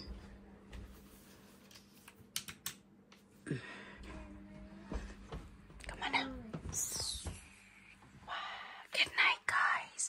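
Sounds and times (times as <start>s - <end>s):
person humming: 3.4s - 5.3s, 5.9s - 7.4s.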